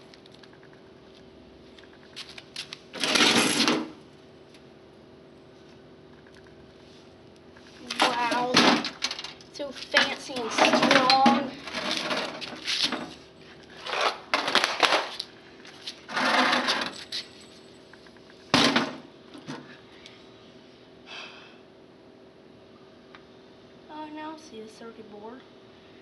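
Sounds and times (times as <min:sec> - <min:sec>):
plastic clattering on concrete: 0:10.0 - 0:13.1, 0:13.8 - 0:15.3.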